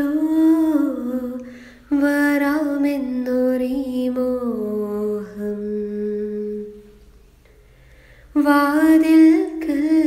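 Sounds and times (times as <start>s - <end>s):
breath: 1.4s - 1.9s, 7.5s - 8.4s.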